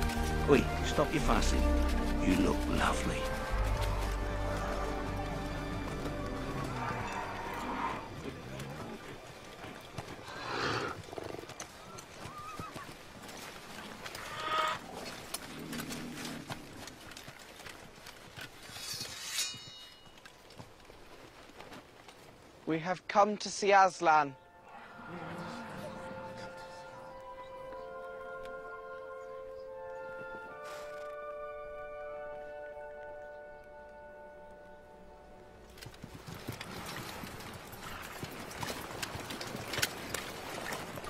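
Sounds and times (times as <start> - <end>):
hooves clopping: 0.0 - 22.8, 24.7 - 41.0.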